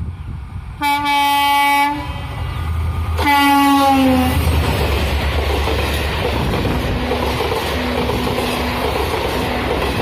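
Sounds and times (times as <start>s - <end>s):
locomotive horn blasts: 0.8s - 4.4s.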